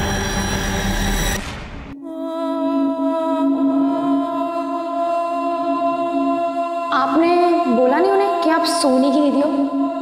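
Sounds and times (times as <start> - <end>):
tense dramatic droning score: 0.0 - 10.0.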